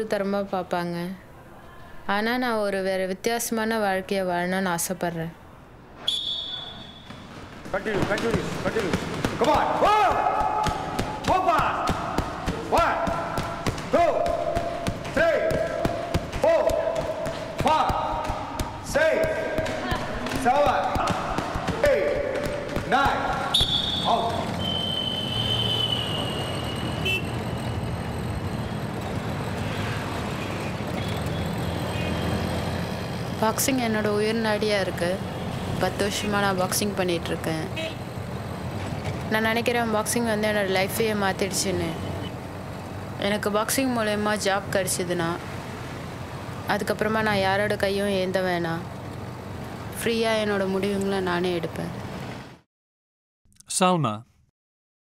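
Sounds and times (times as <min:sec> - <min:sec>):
city traffic: 0:00.0 - 0:52.7
voices counting aloud: 0:09.4 - 0:24.7
auto-rickshaw engine running: 0:24.1 - 0:52.2.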